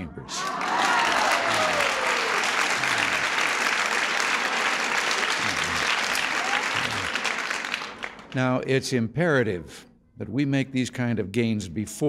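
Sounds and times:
voices: 0.0 - 3.5, 4.4 - 7.4
audience applauding: 0.3 - 8.5.

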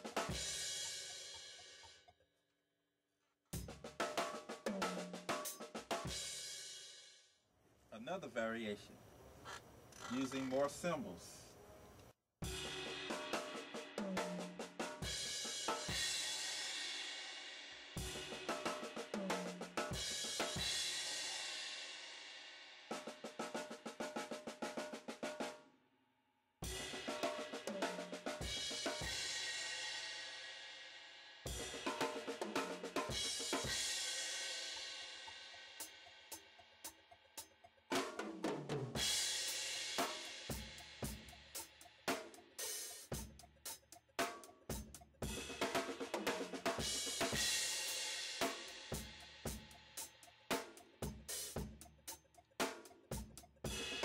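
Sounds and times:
drum kit played with sticks: 0.0 - 2.0, 3.6 - 7.0, 12.4 - 25.6, 26.6 - 30.8, 31.4 - 54.0.

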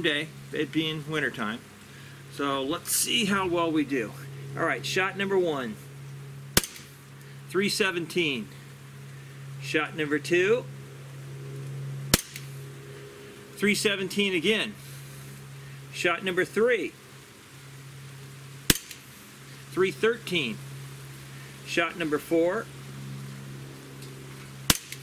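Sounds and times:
steady low hum: 0.0 - 25.0
air pistol shot: 6.6 - 7.0, 12.1 - 12.5, 18.7 - 19.1, 24.7 - 25.0.

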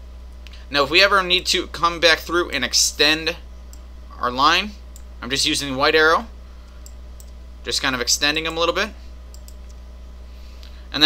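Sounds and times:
low electrical hum: 0.0 - 11.0
computer mouse clicks: 6.7 - 7.4, 9.3 - 9.8.

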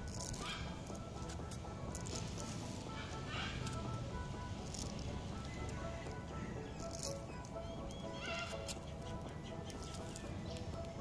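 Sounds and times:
background music: 0.0 - 11.0
parrot call: 8.0 - 8.6.

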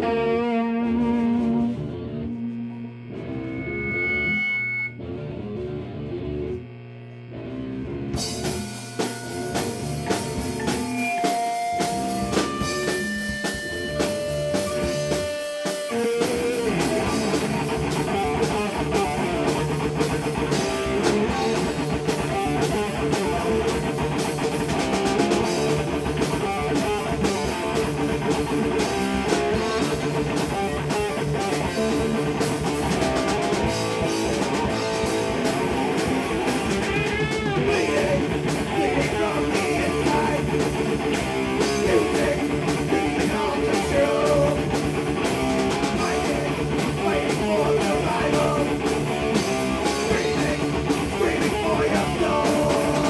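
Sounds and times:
live rock band playing: 0.0 - 5.8, 7.8 - 53.0.

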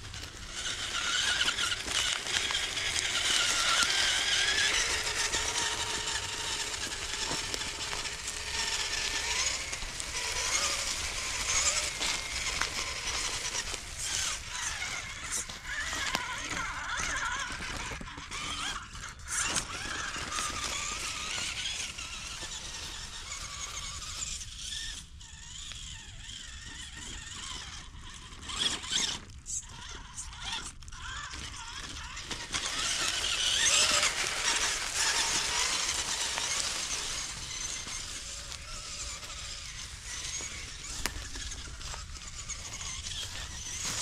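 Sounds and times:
dry leaves crunching: 0.0 - 24.9, 31.3 - 44.0
electric motor and gears whining: 0.0 - 44.0.

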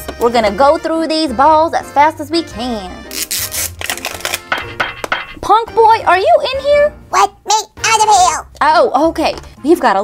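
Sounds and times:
background music: 0.0 - 10.0
plastic wrapper crinkling and tearing: 3.1 - 4.5.

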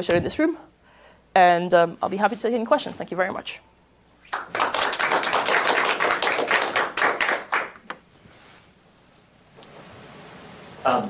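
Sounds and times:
audience applauding: 4.3 - 7.9.

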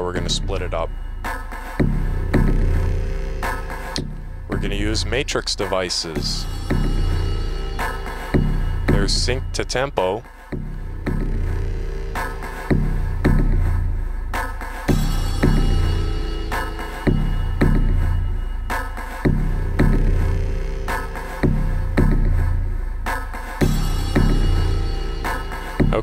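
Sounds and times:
looping synthesizer hits: 0.0 - 5.2, 6.1 - 9.9, 10.5 - 26.0
deep synth bass: 0.0 - 26.0.

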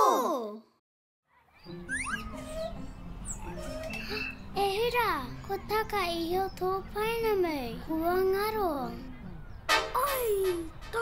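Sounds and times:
rising bird chirps: 1.3 - 4.6
soft cartoon music: 1.3 - 11.0.

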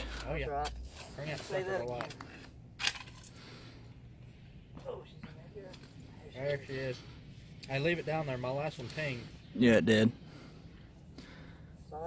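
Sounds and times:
scraping in dirt: 0.0 - 3.5.

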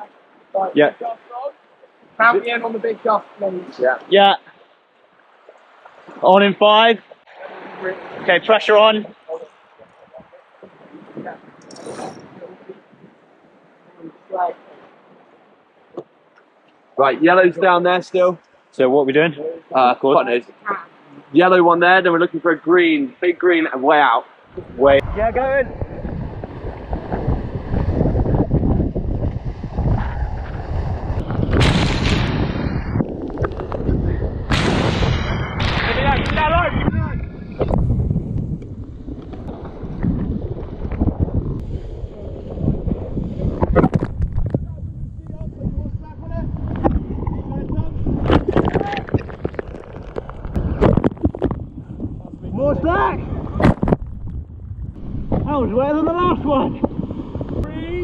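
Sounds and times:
wind buffeting microphone: 5.4 - 16.1, 24.5 - 58.0.

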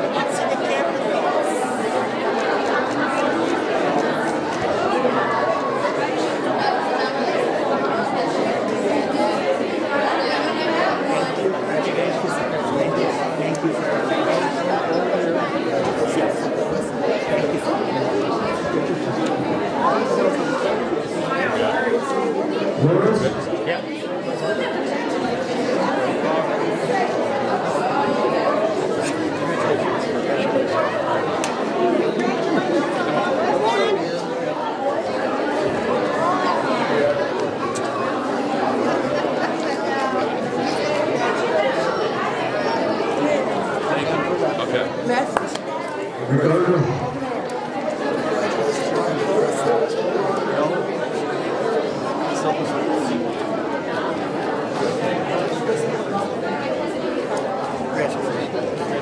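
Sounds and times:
hubbub of overlapping conversation: 0.0 - 59.0.

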